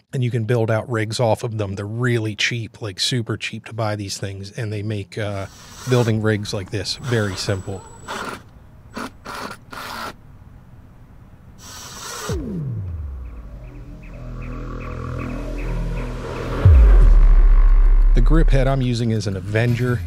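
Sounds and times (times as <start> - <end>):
power screwdriver whirring: 7.0 - 10.2
falling swoop: 12.3 - 18.7
rising musical build: 12.3 - 19.6
deep bass hit: 12.4 - 19.6.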